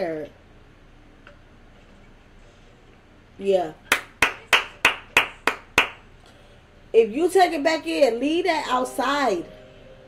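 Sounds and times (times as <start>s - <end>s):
person clapping hands: 3.9s - 6.1s.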